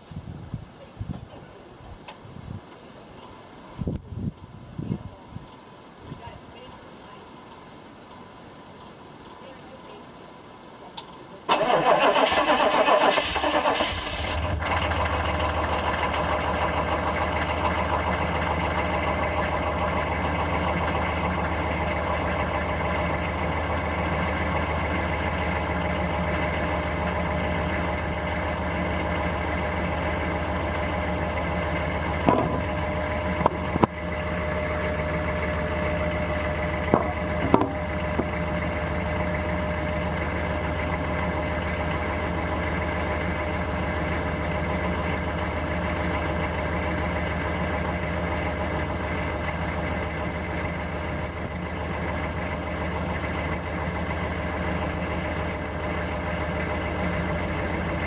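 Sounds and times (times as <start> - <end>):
car engine starting and idling: 11.4 - 58.0.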